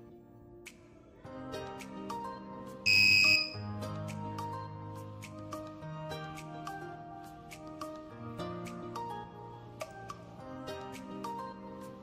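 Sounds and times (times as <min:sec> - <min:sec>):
instrumental background music: 0:00.0 - 0:12.0
high steady buzzer beep: 0:02.9 - 0:03.6.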